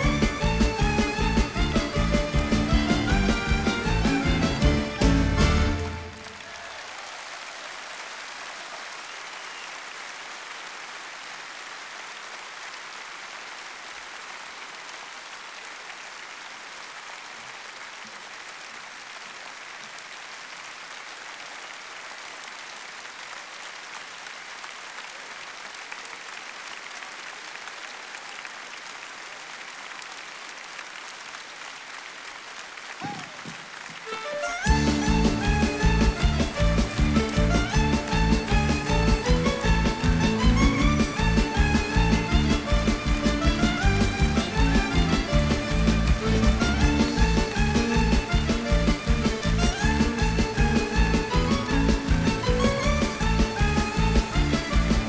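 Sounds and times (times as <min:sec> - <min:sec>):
audience applauding: 0:00.0 - 0:55.0.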